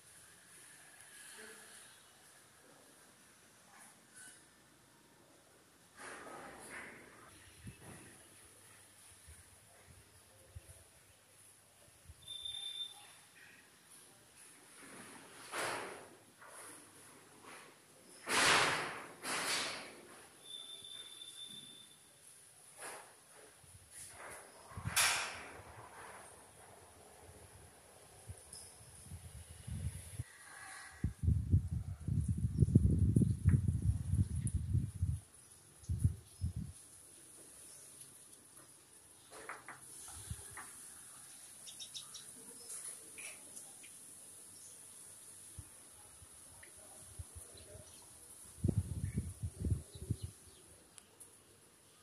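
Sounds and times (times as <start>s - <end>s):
steady high hiss: 0.0s - 3.6s, 35.2s - 52.0s
bird chirps: 12.2s - 13.2s.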